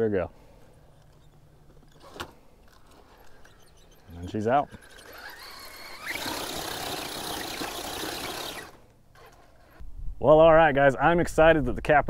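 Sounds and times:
small electric motor running: 2.7 - 9.8.

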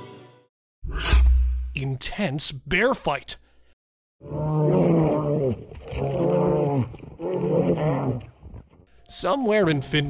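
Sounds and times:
bears growling: 4.2 - 8.6.

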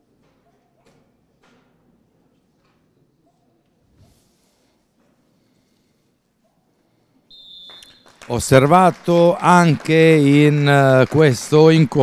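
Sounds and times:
referee's whistle blast: 7.3 - 8.2.

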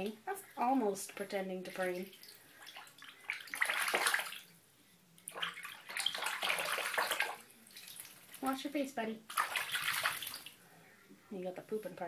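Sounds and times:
duck splashing water in bathtub: 1.7 - 4.5, 5.3 - 8.6, 9.3 - 10.6.

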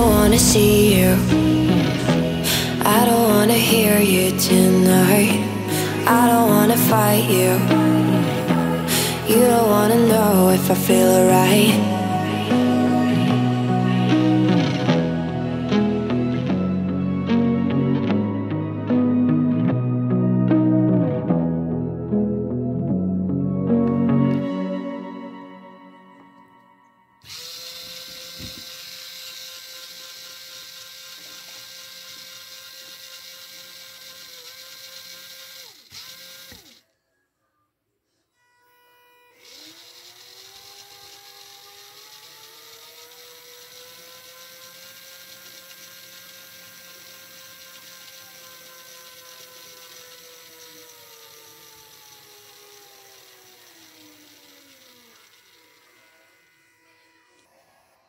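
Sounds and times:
small motor whine and gear rattle: 0.0 - 15.1, 27.2 - 36.9, 38.4 - 57.6.

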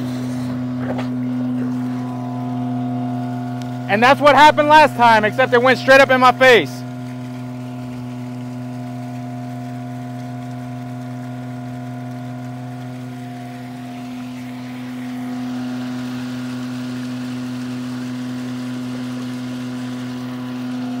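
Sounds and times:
muddy water surging and churning: 0.0 - 21.0
vacuum truck pump droning: 0.0 - 21.0.

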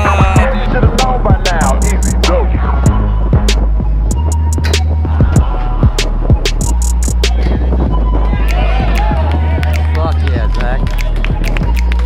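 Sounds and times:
hip-hop music with heavy bass: 0.0 - 12.0.

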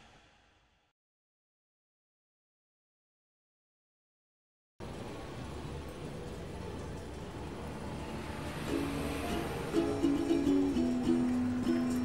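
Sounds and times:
plucked ukulele music: 8.2 - 12.0.

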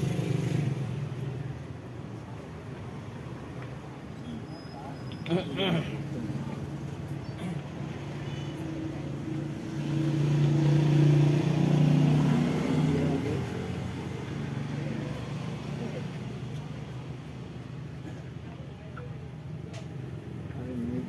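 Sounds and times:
motor vehicle passing by: 0.0 - 2.3, 3.0 - 18.0.

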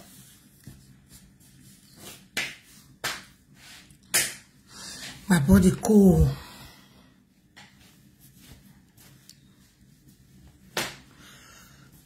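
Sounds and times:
person breathing sharply: 4.7 - 5.2, 11.2 - 12.0.

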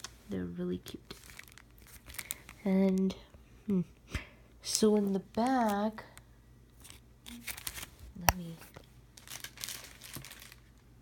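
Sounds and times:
plastic packs crinkling: 0.8 - 3.2, 6.8 - 11.0.

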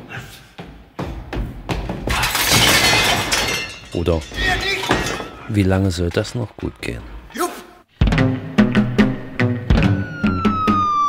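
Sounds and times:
glass shattering: 2.1 - 5.5.

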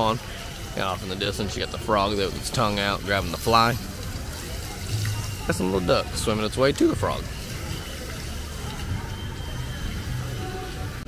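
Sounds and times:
water splashing into a pond: 0.3 - 10.9.

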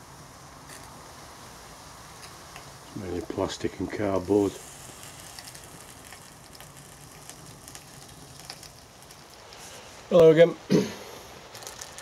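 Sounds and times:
fire crackling: 0.0 - 12.0
low steady fire rush: 0.0 - 12.0.

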